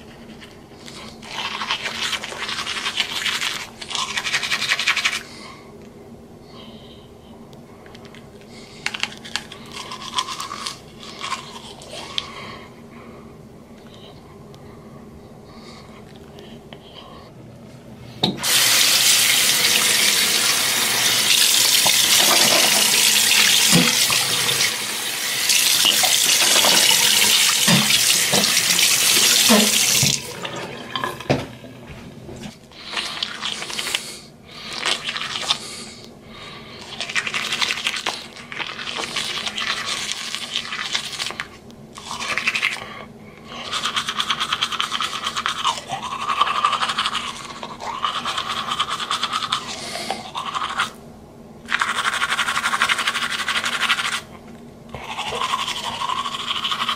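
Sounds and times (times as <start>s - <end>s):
toothbrush scrubbing teeth: 0.0s - 5.3s, 8.0s - 12.4s, 18.5s - 30.1s, 32.8s - 35.8s, 36.8s - 51.0s, 51.7s - 54.3s, 54.9s - 56.9s
tap running into sink: 21.8s - 24.7s, 25.8s - 30.3s.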